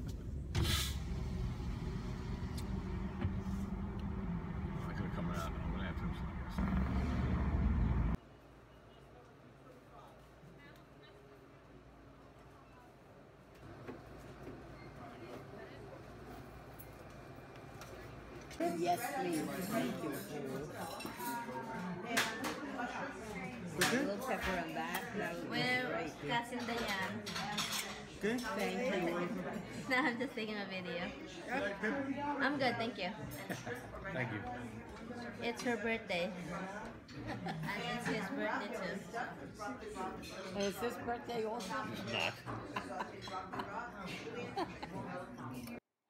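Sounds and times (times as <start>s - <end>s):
car engine rumble in cabin: 0.0s - 8.2s
brief hiss: 0.6s - 1.3s
murmur of diners chatting: 14.2s - 45.8s
cutlery and plates clinking: 19.2s - 22.7s, 26.5s - 28.8s.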